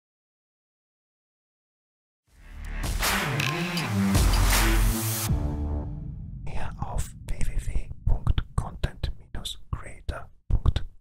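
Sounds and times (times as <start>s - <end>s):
background music: 2.4s - 7.9s
person whispering: 6.4s - 11.0s.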